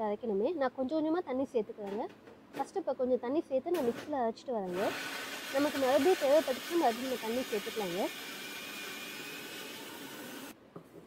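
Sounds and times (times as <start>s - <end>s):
gas stove burner hissing: 4.7s - 10.5s.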